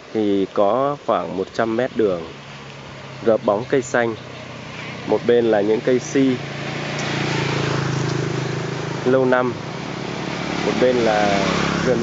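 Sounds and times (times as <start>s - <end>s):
background hiss: 0.0s - 11.8s
small engine humming: 2.1s - 12.0s.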